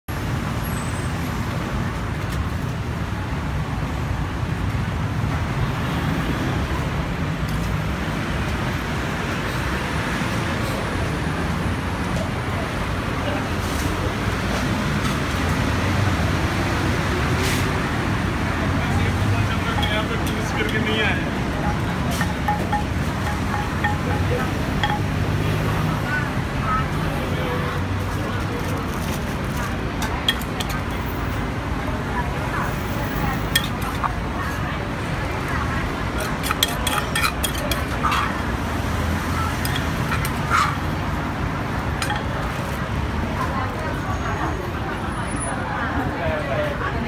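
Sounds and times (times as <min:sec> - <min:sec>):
road traffic noise: 0:00.0 - 0:47.0
people's voices: 0:18.4 - 0:47.0.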